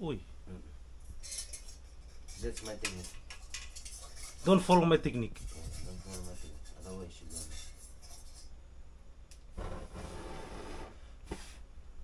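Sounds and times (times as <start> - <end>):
stove hissing: 9.3 - 11.7.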